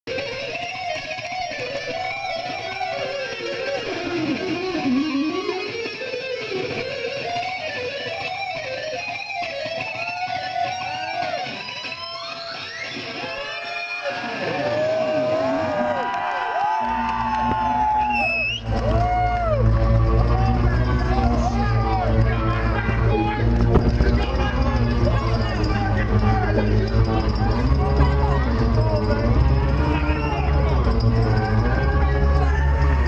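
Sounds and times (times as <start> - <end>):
electric guitar lead: 0.1 - 16.0, 16.8 - 33.0.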